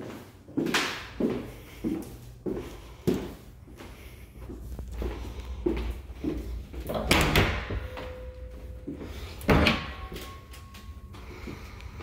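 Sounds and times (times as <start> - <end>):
closet door opening: 6.8 - 8.5.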